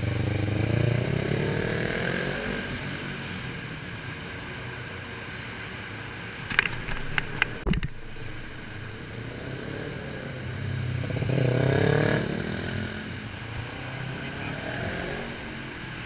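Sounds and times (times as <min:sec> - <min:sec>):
motorcycle passing by: 0:00.0 - 0:03.2, 0:09.2 - 0:16.0
distant motorcycles running: 0:00.0 - 0:03.9, 0:06.4 - 0:16.0.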